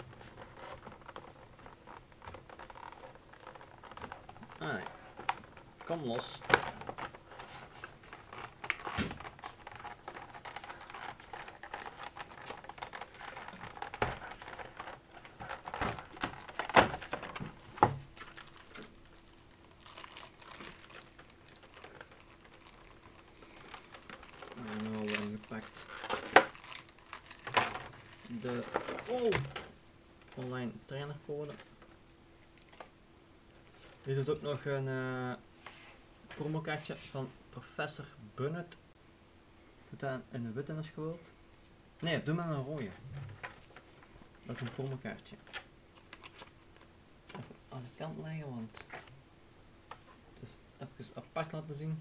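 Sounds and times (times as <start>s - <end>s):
plastic packaging crinkling: 0.0s - 30.6s, 33.5s - 34.4s, 42.8s - 47.5s, 48.2s - 49.2s.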